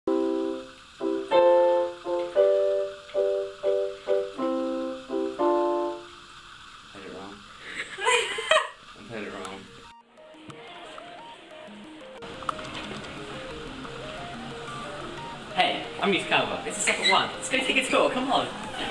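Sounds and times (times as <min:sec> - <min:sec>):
soft single-note melody: 0:00.1 - 0:06.2, 0:09.3 - 0:18.9
piano chords on keyboard: 0:00.1 - 0:06.4, 0:09.2 - 0:18.9
person speaking: 0:15.2 - 0:18.9.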